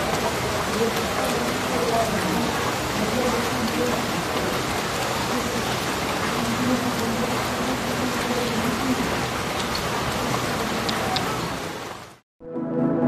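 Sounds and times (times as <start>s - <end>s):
rain on wet ground: 0.0s - 12.2s.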